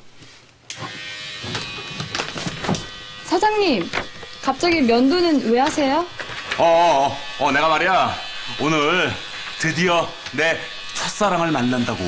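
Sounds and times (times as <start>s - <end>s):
electric shaver buzzing: 0.7s - 12.0s.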